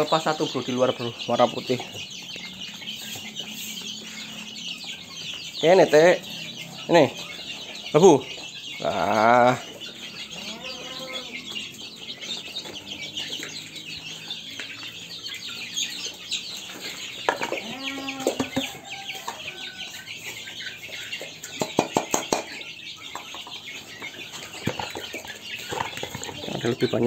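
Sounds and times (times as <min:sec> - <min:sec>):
chickens clucking: 0:00.0 - 0:27.0.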